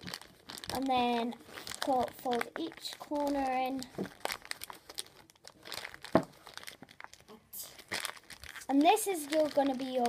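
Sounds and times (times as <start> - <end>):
wrapping paper crinkling: 0.0 - 10.0.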